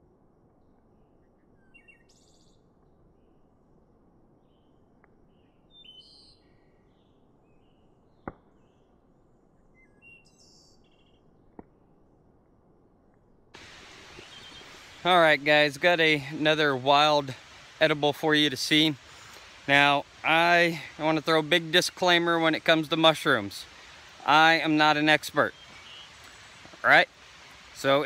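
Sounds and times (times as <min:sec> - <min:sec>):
steady outdoor hiss: 0:00.0 - 0:28.0
faint birds chirping: 0:00.6 - 0:11.4, 0:13.1 - 0:28.0
campfire popping: 0:13.6 - 0:28.0.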